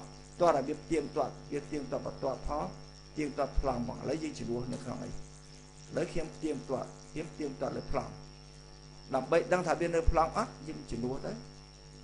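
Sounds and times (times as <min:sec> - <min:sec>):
high-pitched whine: 0:00.0 - 0:12.0
low electrical hum: 0:00.0 - 0:12.0
man speaking: 0:00.4 - 0:05.2, 0:05.9 - 0:08.2, 0:09.1 - 0:11.4.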